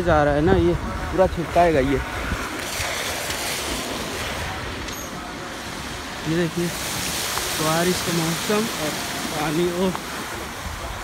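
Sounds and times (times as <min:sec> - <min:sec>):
car splashing through flood water: 0:00.0 - 0:11.0.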